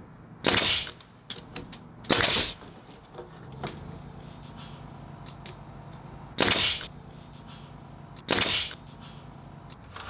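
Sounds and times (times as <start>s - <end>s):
nail gun firing: 0.4s - 1.5s, 2.1s - 2.6s, 6.4s - 6.9s, 8.2s - 8.8s.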